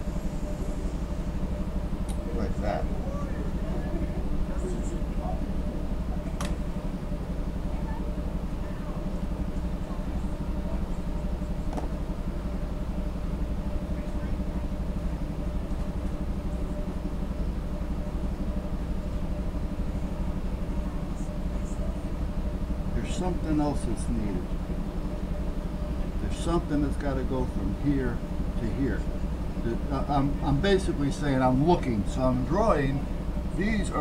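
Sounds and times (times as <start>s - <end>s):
low mechanical hum: 0.0s - 34.0s.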